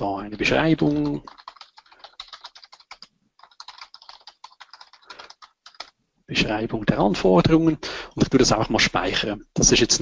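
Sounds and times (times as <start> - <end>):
typing on a computer keyboard: 0.3 - 6.0.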